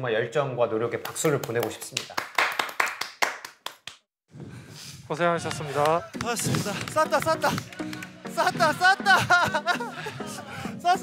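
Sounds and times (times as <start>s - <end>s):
people clapping: 1.0s - 4.0s, 5.4s - 9.6s.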